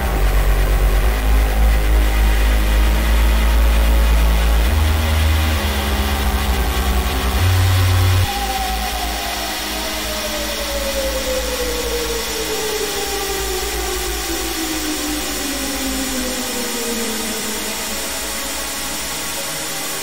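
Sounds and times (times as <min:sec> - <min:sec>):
deep sustained synth bass: 0:00.0 - 0:20.0
high synth tone gliding downward: 0:00.0 - 0:20.0.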